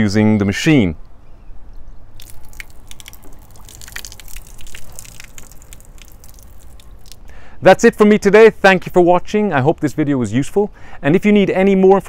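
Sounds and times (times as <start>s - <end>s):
water dripping: 2.2s - 7.4s.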